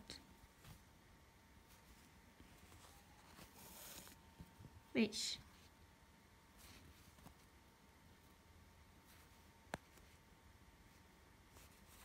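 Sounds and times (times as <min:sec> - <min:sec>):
thread rustling through cloth: 0:00.1 - 0:04.8, 0:05.4 - 0:12.0.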